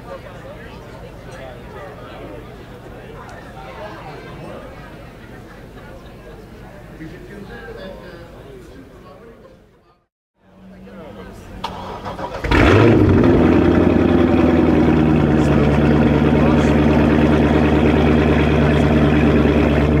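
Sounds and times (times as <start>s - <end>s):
car engine starting and idling: 11.2s - 20.0s.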